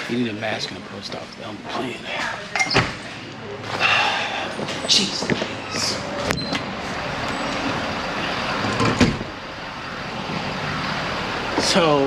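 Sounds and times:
outdoor street noise: 0:00.0 - 0:12.0.

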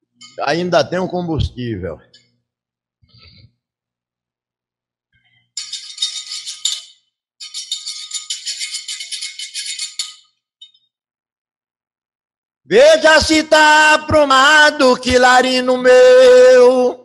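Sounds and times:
hand shaker rattling: 0:05.6 - 0:10.8.

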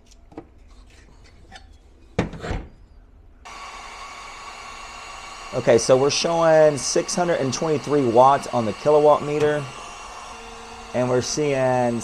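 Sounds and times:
appliance whirring and humming: 0:03.5 - 0:12.0.

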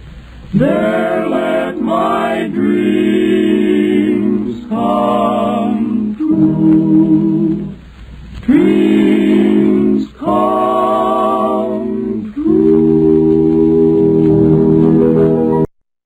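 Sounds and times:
men singing in harmony: 0:00.6 - 0:07.8, 0:08.4 - 0:14.8.

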